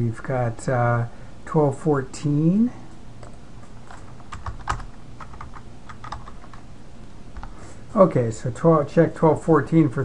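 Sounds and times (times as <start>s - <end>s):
typing on computer keyboard: 3.8s - 6.6s.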